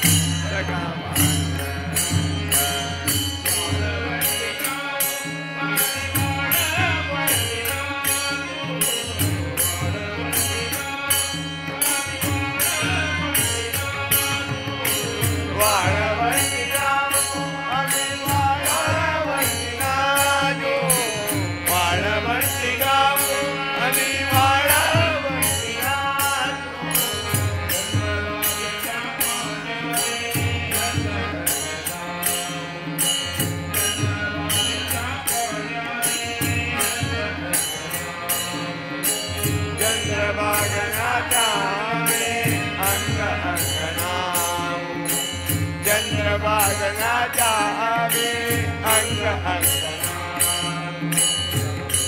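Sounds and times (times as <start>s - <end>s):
men singing devotional song: 0.0s - 52.0s
regular percussive beat: 0.0s - 52.0s.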